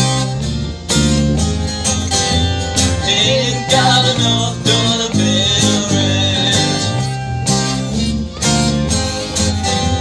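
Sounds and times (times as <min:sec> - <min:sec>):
acoustic guitars strumming: 0:00.0 - 0:10.0.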